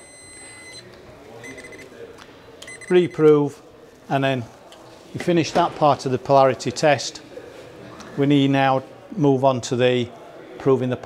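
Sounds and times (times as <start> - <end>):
voltage tester beeping: 0.0 - 1.9, 2.6 - 3.2.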